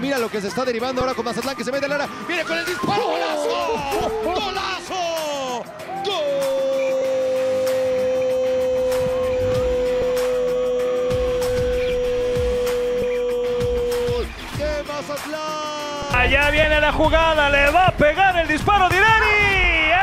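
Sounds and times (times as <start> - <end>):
background music: 0.0 - 20.0
commentator's long goal shout: 2.7 - 14.2.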